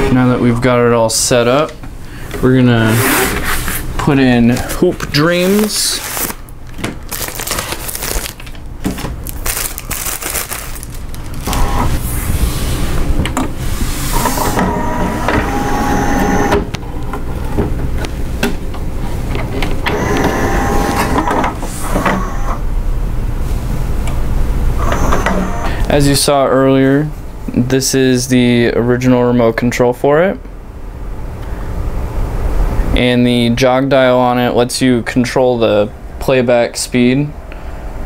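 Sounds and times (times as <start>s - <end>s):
paper sleeve rustling: 2.8s - 12.9s
whining motor tone: 11.4s - 12.0s, 14.1s - 16.7s, 19.8s - 22.6s, 24.8s - 25.7s.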